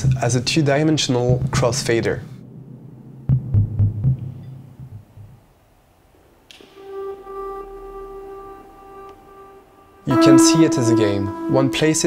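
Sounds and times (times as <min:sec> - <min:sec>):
low music beats: 0:00.0 - 0:05.6, 0:06.5 - 0:12.0
held pitched note with overtones: 0:06.5 - 0:12.0.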